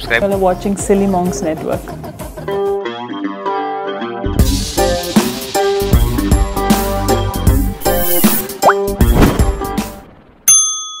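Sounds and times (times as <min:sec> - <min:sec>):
music with drum hits: 0:09.0 - 0:10.0
bell-like ding: 0:10.5 - 0:11.0.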